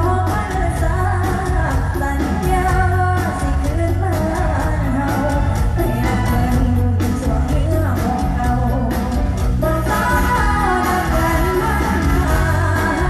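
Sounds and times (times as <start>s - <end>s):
loud amplified band: 0.0s - 13.0s
woman singing into a microphone: 0.0s - 13.0s.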